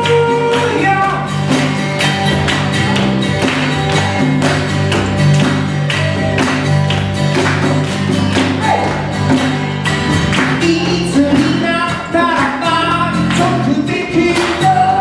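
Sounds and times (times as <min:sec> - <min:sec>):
acoustic guitar strumming: 0:00.0 - 0:15.0
sustained bass line: 0:00.0 - 0:15.0.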